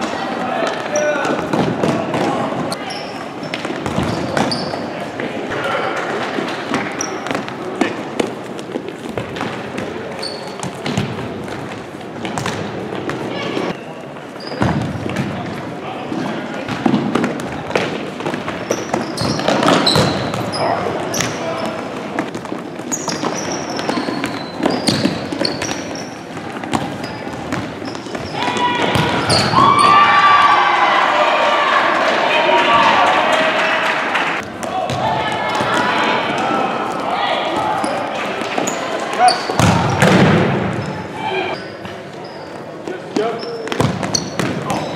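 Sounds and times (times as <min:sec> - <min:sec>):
hubbub of large gym: 0:00.0 - 0:44.9
voices echoing in a hall: 0:00.0 - 0:44.9
shoe squeak: 0:02.7 - 0:05.0, 0:06.9 - 0:07.3, 0:10.2 - 0:10.7, 0:13.4 - 0:14.8, 0:18.6 - 0:21.4, 0:22.8 - 0:28.5, 0:29.2 - 0:30.0, 0:37.8 - 0:40.0, 0:40.8 - 0:44.9
ball bouncing on floor: 0:39.2 - 0:40.4, 0:43.7 - 0:44.8.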